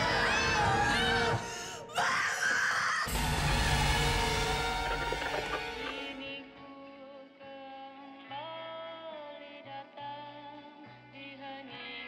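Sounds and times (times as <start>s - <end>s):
dark music: 0.0s - 7.0s.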